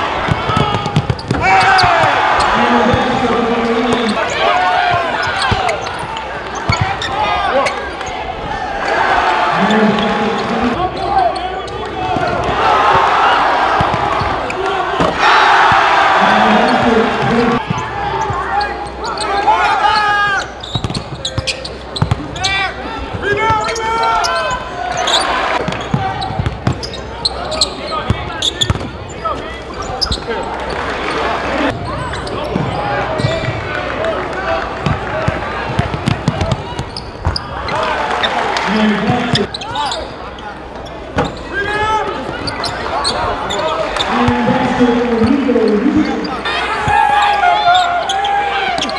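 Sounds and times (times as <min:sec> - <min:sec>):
crowd voices in a gym: 0:00.0 - 0:48.9.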